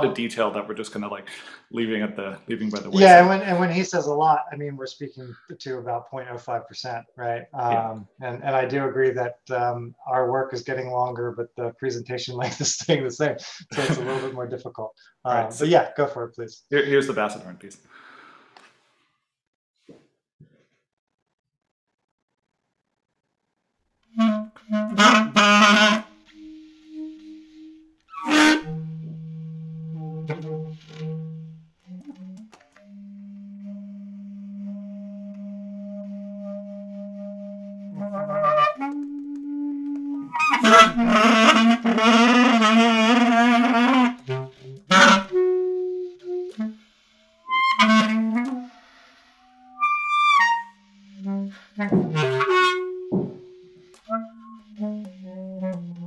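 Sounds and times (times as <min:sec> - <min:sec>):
basset horn playing: 0:02.4 - 0:04.0, 0:13.7 - 0:14.5, 0:24.1 - 0:56.0.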